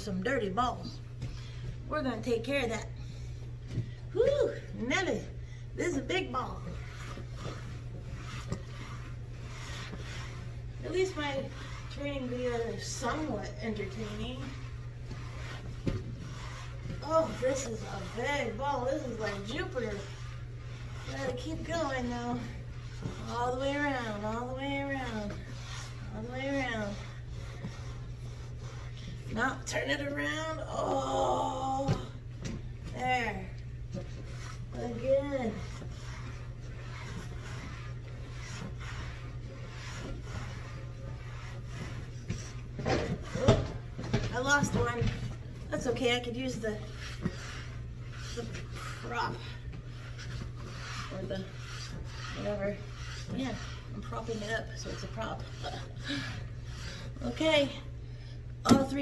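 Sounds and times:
cloth rubbing on rubber ball: 0.0 - 58.7
steady low hum: 0.0 - 59.0.

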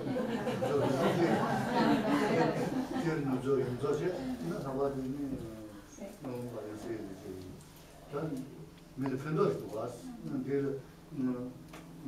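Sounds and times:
man speaking in a low voice: 2.3 - 11.6.

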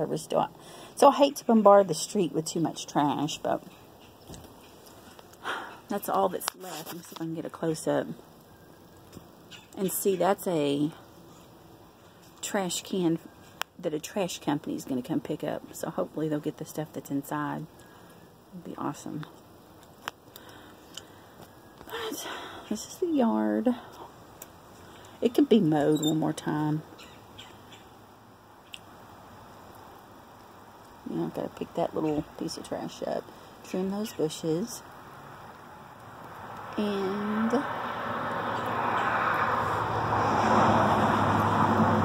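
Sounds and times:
low background noise: 0.0 - 42.0
faint ticks: 19.2 - 22.0
car passing: 35.0 - 42.0.

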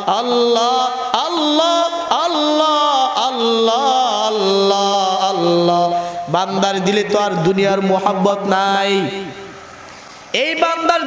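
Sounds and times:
man chanting melodically: 0.0 - 9.6, 10.3 - 11.0.

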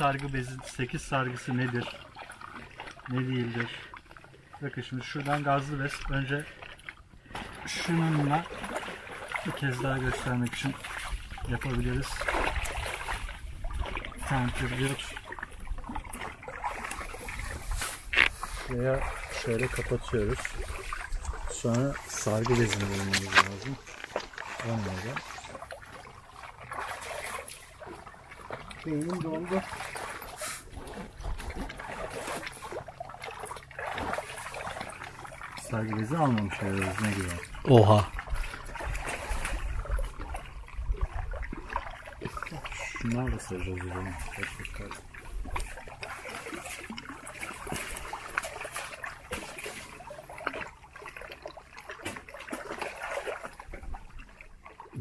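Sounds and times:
water lapping softly: 0.0 - 55.0.

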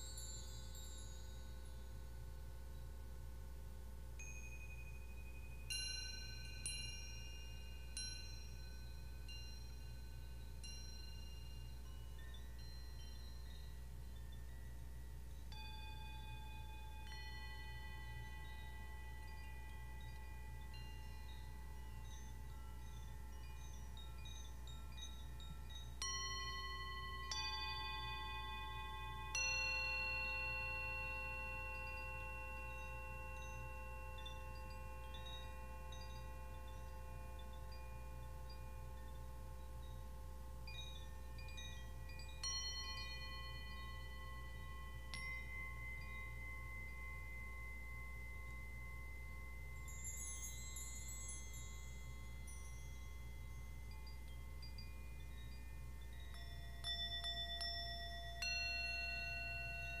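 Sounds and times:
metal chimes ringing: 0.0 - 3.1, 4.2 - 60.0.

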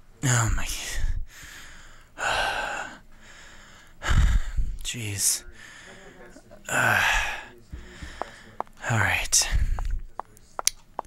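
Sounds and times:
breathy hissing gasps: 1.0 - 4.8, 5.4 - 10.0.

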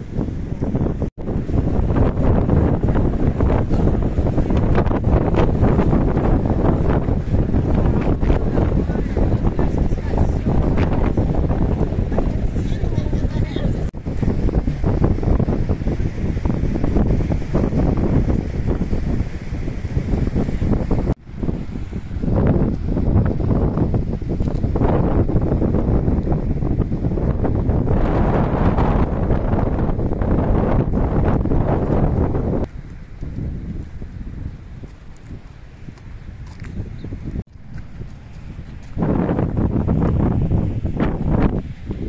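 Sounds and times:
surf breaking on shore: 0.0 - 36.6
wind buffeting microphone: 0.0 - 42.0.

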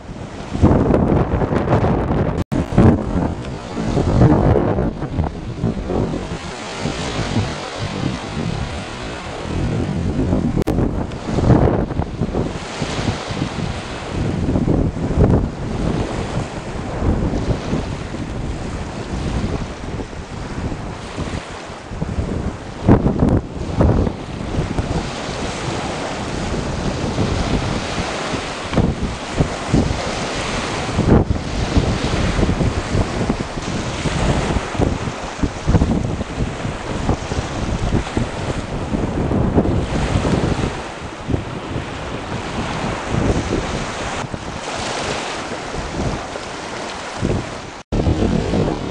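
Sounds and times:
waves washing on shore: 0.0 - 48.9
wind buffeting microphone: 0.0 - 48.9.

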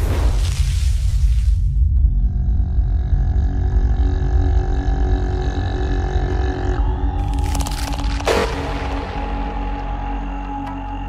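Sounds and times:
deep rumbling bass: 0.0 - 11.0.

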